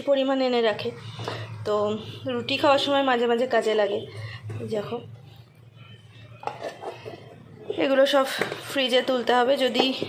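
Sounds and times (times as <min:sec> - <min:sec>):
plastic lids clattering on stone: 0:06.4 - 0:07.4, 0:08.2 - 0:08.9.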